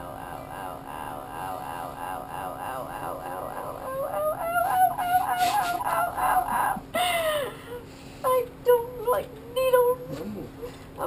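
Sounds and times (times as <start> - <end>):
woman whimpering and squealing: 2.6 - 7.5.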